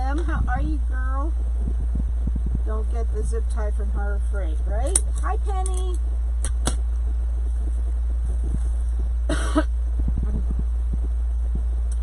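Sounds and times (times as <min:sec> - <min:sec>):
steady low hum: 0:00.0 - 0:12.0
person coughing: 0:09.3 - 0:09.7.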